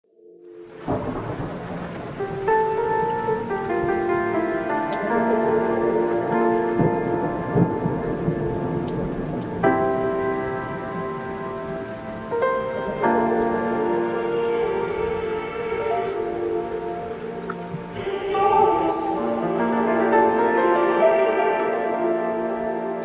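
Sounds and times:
held chords: 0.2 - 23.0
rain: 0.4 - 23.0
rolls of thunder: 0.8 - 20.6.

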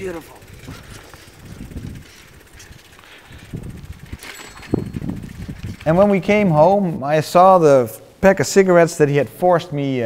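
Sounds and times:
bicycle riding noise: 0.0 - 10.0
wind on microphone: 0.5 - 6.5.

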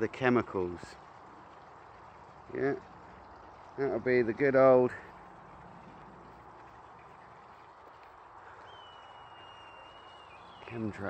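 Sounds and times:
faint outdoor background noise: 0.0 - 11.0
thin high whistle: 8.7 - 10.8.

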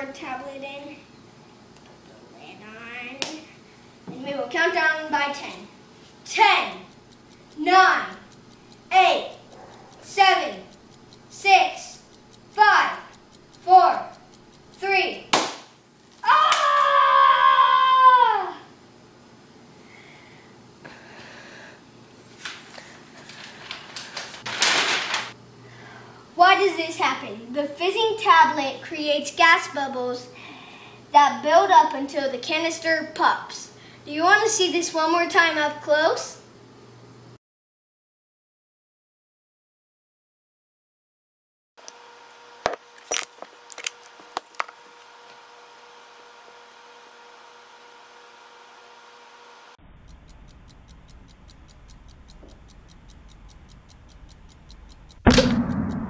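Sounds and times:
electrical hum: 0.0 - 37.4, 41.8 - 56.0
faint clicks: 6.3 - 15.3, 49.8 - 56.0
paper poster rustling: 22.3 - 25.4.

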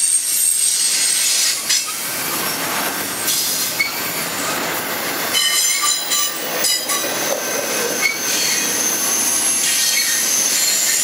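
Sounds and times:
train wheels roaring on rail: 0.0 - 11.0
high wheel squeal: 3.2 - 4.6, 5.3 - 11.0.

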